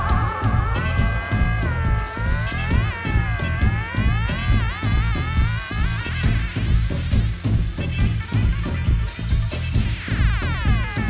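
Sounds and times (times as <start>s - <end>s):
bass: 0.0s - 11.0s
drums: 0.0s - 11.0s
gliding wobbling lead tone: 0.0s - 11.0s.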